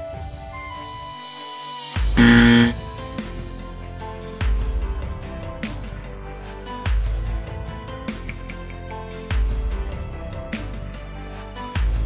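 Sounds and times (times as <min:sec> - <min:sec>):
wrong answer buzzer: 0:02.2 - 0:02.8.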